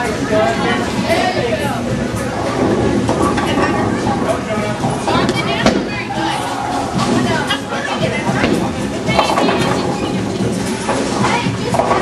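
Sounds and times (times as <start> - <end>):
bowling balls rolling: 0.0 - 12.0
voices chattering: 0.0 - 12.0.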